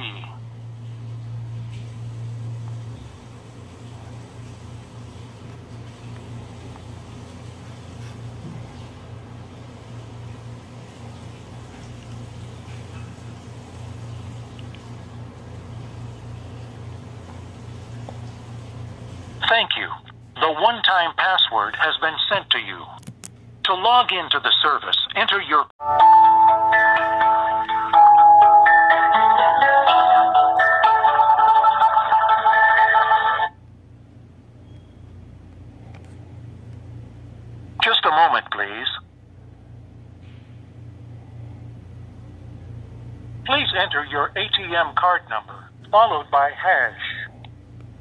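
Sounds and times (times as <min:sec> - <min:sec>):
automated voice through phone: 0:00.0 - 0:00.4, 0:37.8 - 0:39.0, 0:43.5 - 0:47.4
low hum with faint hiss: 0:00.0 - 0:48.0
marimba hold music over phone: 0:25.8 - 0:33.0.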